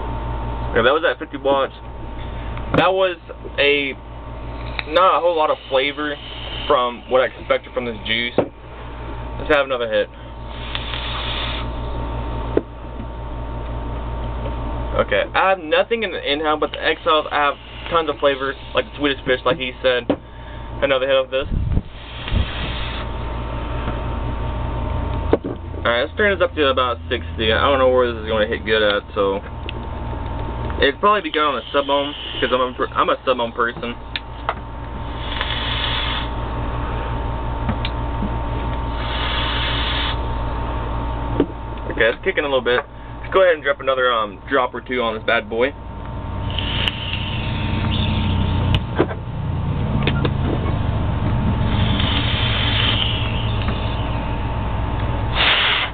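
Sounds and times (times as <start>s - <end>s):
steady low hum: 0.0s - 55.9s
vape hiss: 4.7s - 7.2s, 10.5s - 11.8s, 16.6s - 19.1s, 21.9s - 23.1s, 31.2s - 32.7s, 35.0s - 36.4s, 38.9s - 40.2s, 46.4s - 48.3s, 51.6s - 54.1s, 55.3s - 55.9s.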